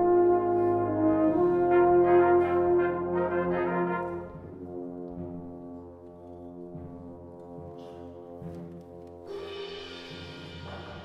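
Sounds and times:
brass band sustained chord: 0.0 - 11.0.

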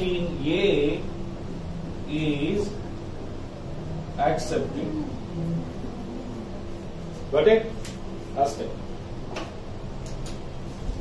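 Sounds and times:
room noise: 0.0 - 11.0.

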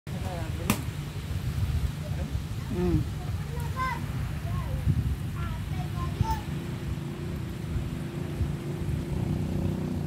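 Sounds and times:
wind buffeting microphone: 0.1 - 10.0
faint voices: 1.8 - 7.1.

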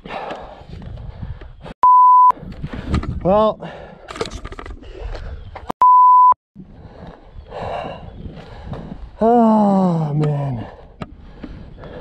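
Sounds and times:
censor bleep: 1.8 - 2.3, 5.8 - 6.4.

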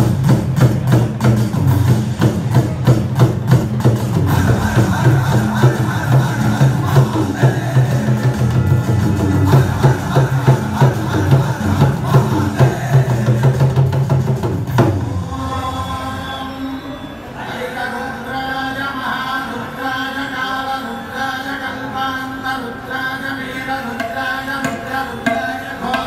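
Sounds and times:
tabla playing: 0.0 - 15.9, 24.0 - 26.0.

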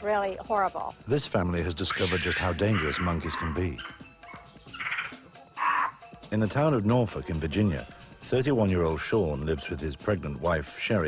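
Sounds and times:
faint background music: 0.0 - 11.0
short animal calls: 4.8 - 6.0.

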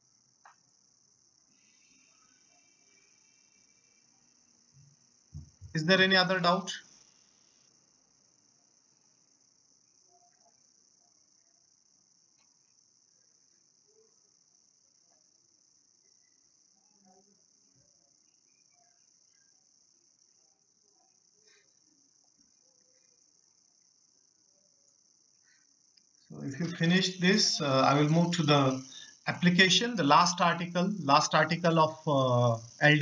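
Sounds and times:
faint high-pitched hiss: 0.0 - 33.0.

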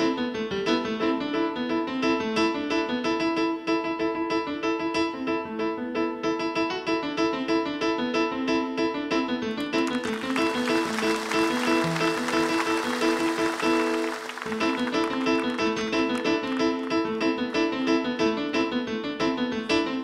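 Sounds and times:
fast piano improvisation: 0.0 - 20.0
audience applause: 9.8 - 17.4.

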